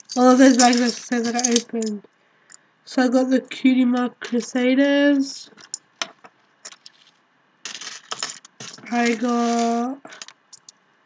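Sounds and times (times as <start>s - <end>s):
metal chains and tags clinking: 0.0s - 2.0s, 7.7s - 10.3s.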